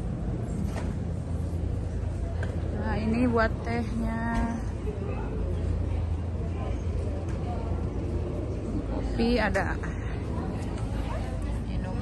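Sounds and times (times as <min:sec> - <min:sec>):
air conditioner humming: 0:00.0 - 0:12.0
faint voices: 0:01.2 - 0:12.0.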